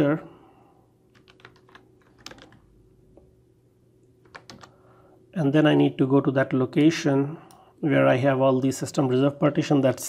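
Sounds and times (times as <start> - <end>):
keyboard and mouse clicks: 1.2 - 2.6, 4.2 - 4.7.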